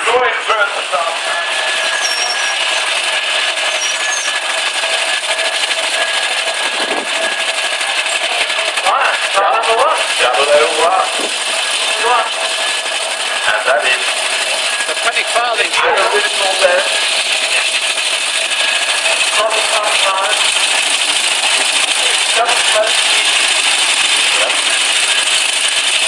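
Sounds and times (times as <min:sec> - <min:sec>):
indistinct voices talking: 0:00.0 - 0:25.2.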